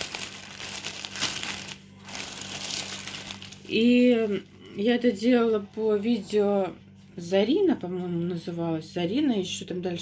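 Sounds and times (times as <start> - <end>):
plastic bag crinkling: 0.0 - 4.4.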